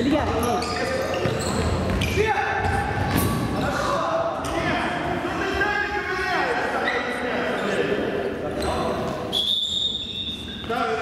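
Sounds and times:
referee's whistle blast: 9.3 - 10.7.

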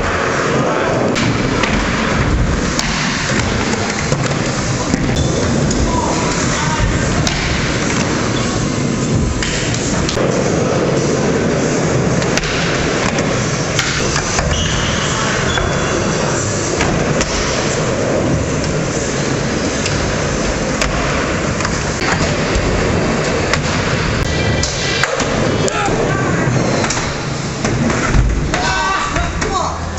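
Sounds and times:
skateboards rolling on concrete: 0.0 - 29.9.

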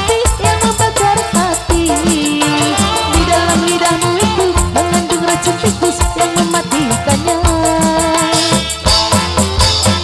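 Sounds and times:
band playing instrumental: 0.0 - 10.0
steady drum beat: 0.0 - 10.0.

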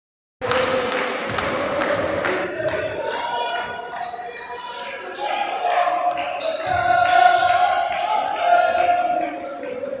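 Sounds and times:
spectators' voices: 0.4 - 10.0.

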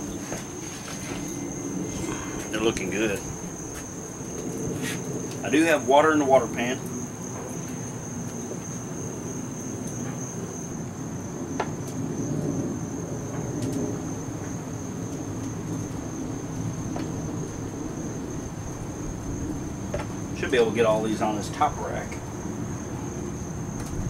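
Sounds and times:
insects droning: 0.0 - 24.0
low outdoor rumble: 0.0 - 24.0.

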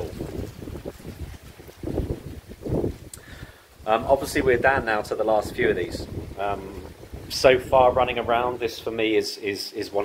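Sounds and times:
wind buffeting microphone: 0.0 - 9.2.

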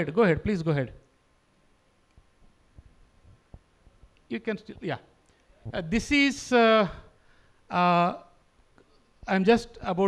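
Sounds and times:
faint low thumps: 2.2 - 6.2.

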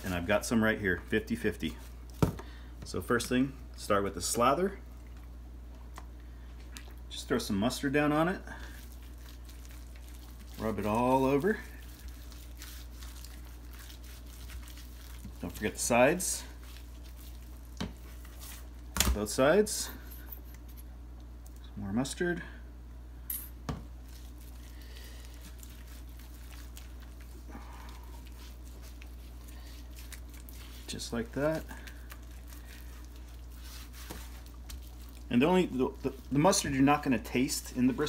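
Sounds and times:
wet smearing sounds: 0.0 - 2.2, 2.9 - 20.7, 24.0 - 38.0
steady low hum: 0.0 - 38.0.

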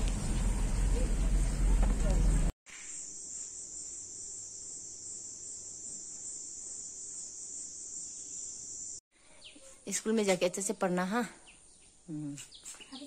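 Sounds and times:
car interior rumble: 0.0 - 2.5
high-pitched insect chorus: 0.1 - 9.0.

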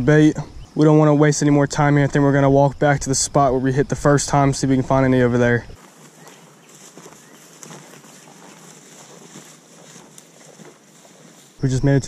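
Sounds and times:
steady high hiss: 0.0 - 12.0
people walking through grass: 4.0 - 12.0.

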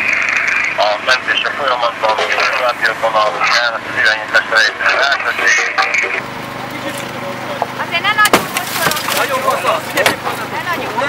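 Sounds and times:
power unit engine hum: 0.0 - 11.0
voices: 0.0 - 11.0
sharp cracks of metal cab: 8.2 - 10.3.

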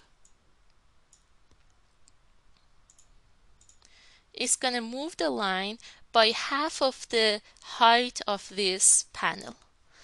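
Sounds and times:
mouse clicks: 0.2 - 3.9
keyboard typing clicks: 2.8 - 3.9.

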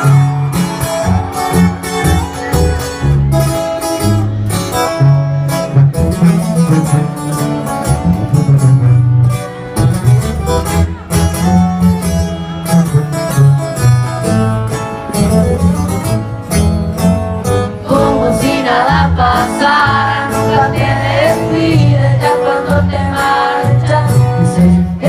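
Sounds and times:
guitars strummed and picked: 0.0 - 25.0
tuba bass line: 0.0 - 25.0.

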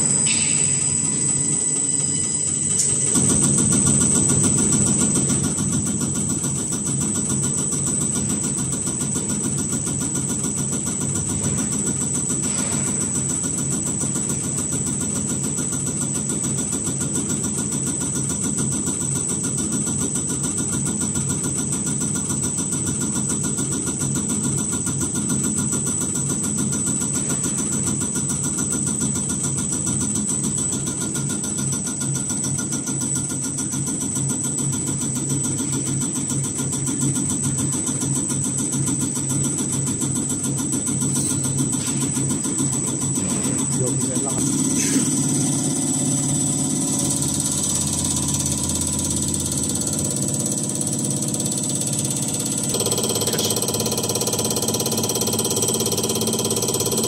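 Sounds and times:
high-pitched whine: 0.0 - 8.5
motor and pump running: 0.0 - 57.0
rapid injector ticking: 25.2 - 57.0.

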